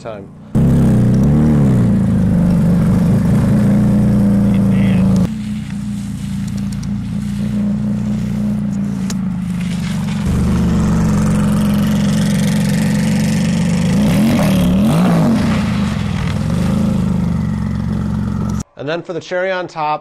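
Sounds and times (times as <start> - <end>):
race car engine revving: 0.4 - 18.6.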